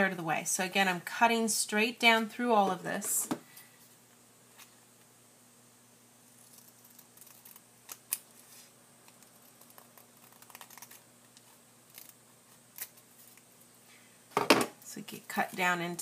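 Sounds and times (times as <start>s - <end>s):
scissors snipping paper: 9.1s - 11.0s.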